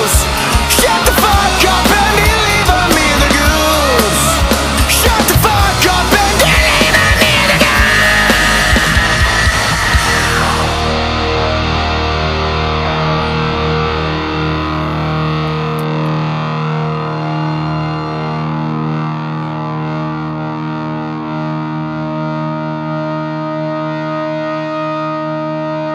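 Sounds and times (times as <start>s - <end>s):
distorted electric guitar chord ringing: 0.0s - 25.9s.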